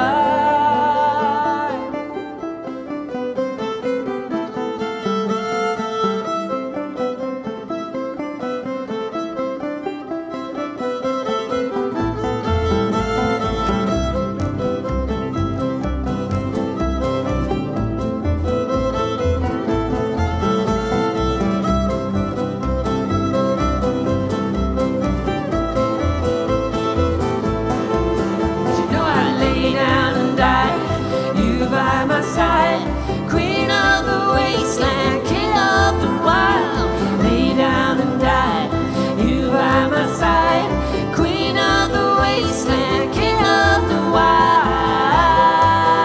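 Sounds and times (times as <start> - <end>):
woman singing: 0.0 - 2.4, 28.6 - 46.0
fiddle melody: 0.0 - 46.0
small plucked string instrument: 0.0 - 46.0
strummed acoustic guitar: 0.0 - 46.0
upright bass: 11.3 - 46.0.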